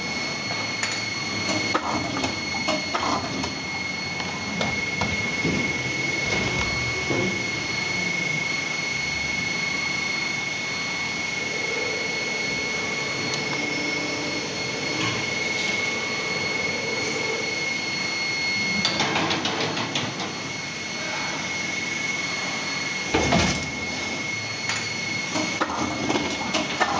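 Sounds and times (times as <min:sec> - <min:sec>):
machine running with high whine: 0:00.0 - 0:26.9.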